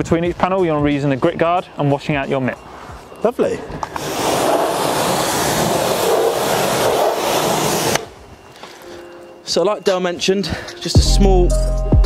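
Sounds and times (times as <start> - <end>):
pressure washer spraying water: 4.0 - 8.1.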